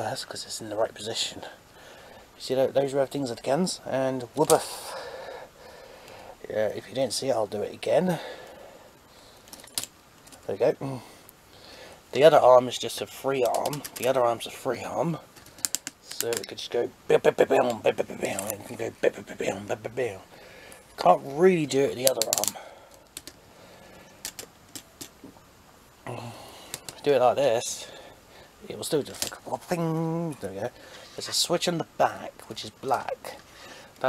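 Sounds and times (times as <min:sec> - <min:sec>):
handling noise: 0:24.1 - 0:25.4.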